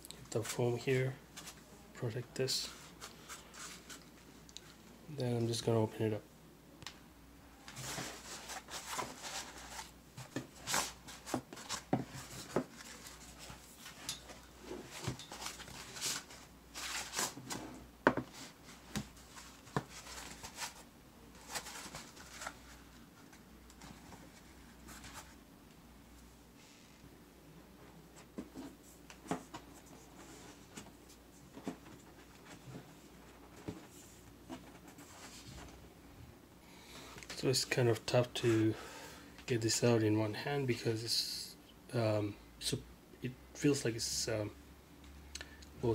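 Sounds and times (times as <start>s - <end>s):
rustles and light knocks: 28.1s - 35.8s.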